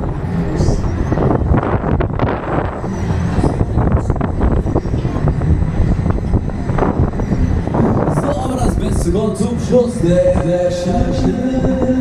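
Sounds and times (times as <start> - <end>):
fairground ride rumbling: 0.0 - 12.0
wind rushing over microphone: 0.0 - 12.0.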